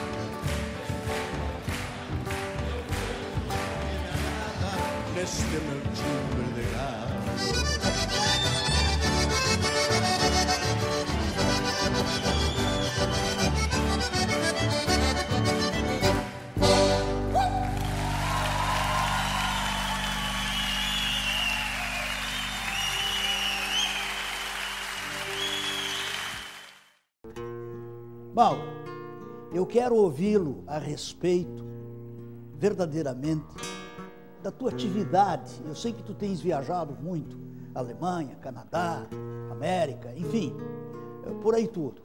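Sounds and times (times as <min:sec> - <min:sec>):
audience applause and cheering: 0:00.0 - 0:06.7, 0:08.0 - 0:14.4, 0:15.4 - 0:27.0
accordion-led band playing: 0:06.7 - 0:17.4.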